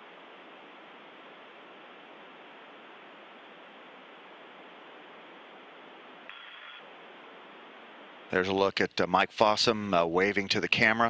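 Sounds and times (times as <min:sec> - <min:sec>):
radio channel hiss: 0:00.0 - 0:11.0.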